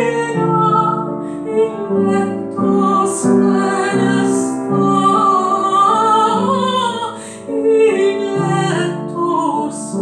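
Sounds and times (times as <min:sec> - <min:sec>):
alto voice singing: 0:00.0 - 0:10.0
piano accompaniment: 0:00.0 - 0:10.0.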